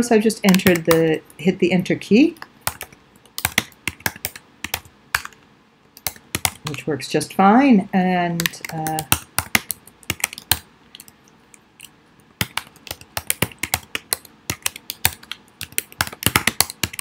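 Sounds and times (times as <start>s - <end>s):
computer keyboard typing: 0.5s - 1.2s, 2.4s - 5.4s, 6.0s - 6.9s, 8.4s - 17.0s.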